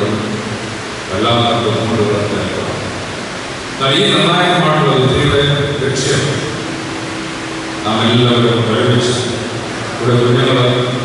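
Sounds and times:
man speaking over loudspeakers: 0.0 - 0.5, 1.1 - 3.0, 3.8 - 6.6, 7.8 - 11.0
steady hiss: 0.0 - 11.0.

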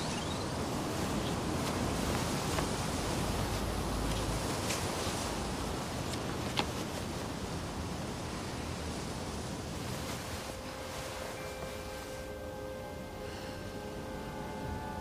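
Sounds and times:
outdoor ambience hiss: 0.0 - 15.0
soft held music notes: 0.0 - 15.0.

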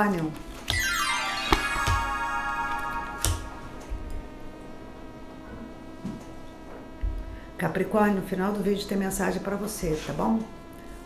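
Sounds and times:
sustained high chord: 0.6 - 5.9.

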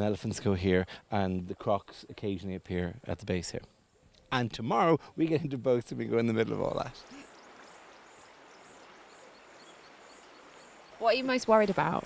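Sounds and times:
soft even hiss: 0.0 - 12.0
insects chirping: 6.3 - 12.0.

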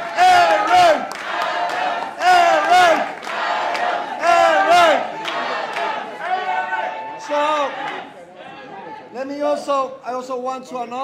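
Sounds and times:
crowd clapping: 0.0 - 6.9, 7.8 - 8.1
crowd chanting: 0.0 - 9.1.

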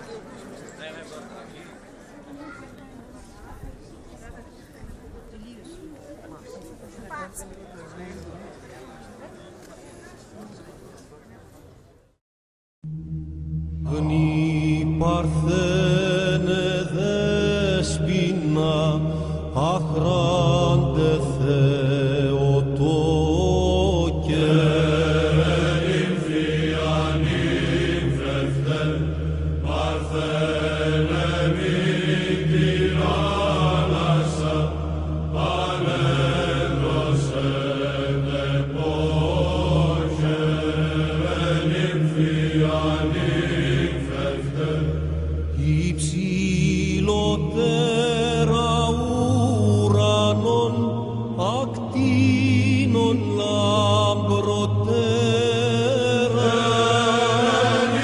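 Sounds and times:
low drone: 12.8 - 58.0
person chanting: 12.8 - 58.0.

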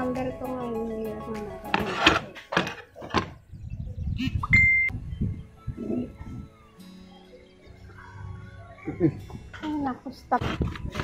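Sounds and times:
short high beep: 4.5 - 4.9.

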